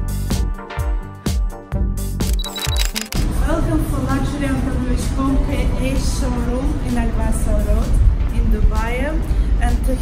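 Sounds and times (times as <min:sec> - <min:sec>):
music with beat and sliding bass: 0:00.0 - 0:02.5
woman speaking: 0:03.3 - 0:10.0.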